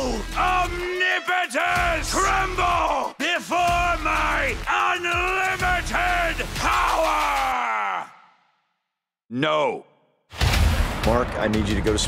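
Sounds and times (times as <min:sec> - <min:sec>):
men yelling together: 0:00.0 - 0:08.4.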